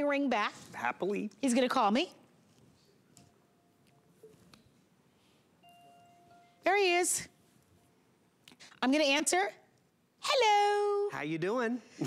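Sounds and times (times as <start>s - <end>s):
faint electronic ringing tone: 5.6s - 6.7s.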